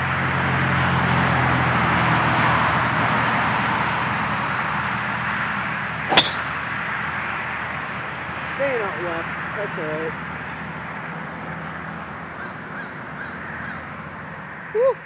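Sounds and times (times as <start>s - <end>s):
golf ball struck crack: 6.1s - 6.7s.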